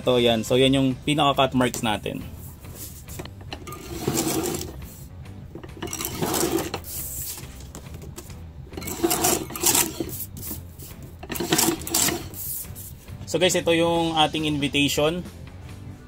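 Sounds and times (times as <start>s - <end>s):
paper trimmer blade cutting: 11.4s - 12.4s.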